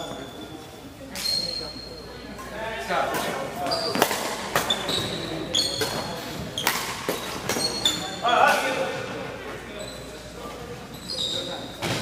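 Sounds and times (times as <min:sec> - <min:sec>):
sneaker squeak: 0:00.0 - 0:02.5, 0:03.6 - 0:12.0.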